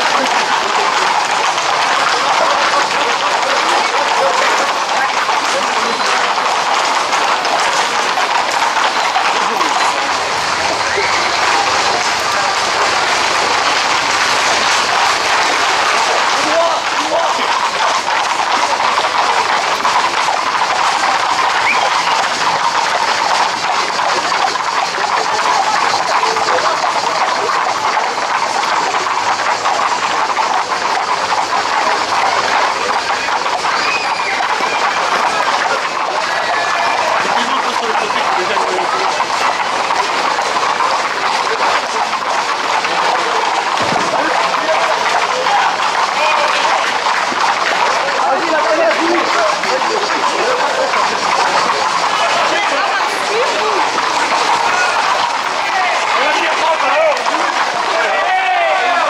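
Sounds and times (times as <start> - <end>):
crowd noise: 0.0 - 59.0
horses' hooves clattering on street: 0.0 - 59.0.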